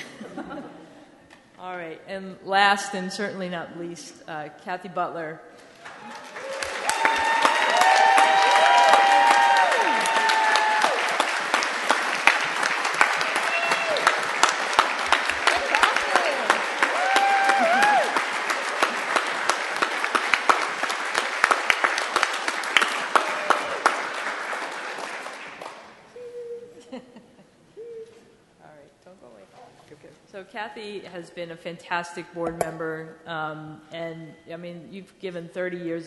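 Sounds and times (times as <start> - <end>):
audience applauding: 5.7 - 26.2
voices cheering: 5.9 - 19.2, 23.0 - 24.0.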